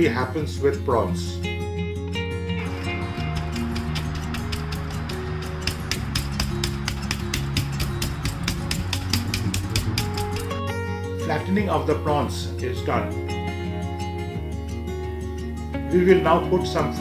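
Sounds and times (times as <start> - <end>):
guitar music: 0.0 - 17.0
knife blade beating prawns: 3.0 - 10.5.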